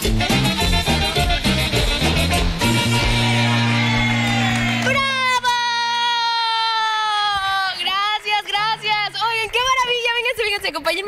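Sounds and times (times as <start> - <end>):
dance music: 0.0 - 10.2
long shout and yelps: 3.6 - 7.8.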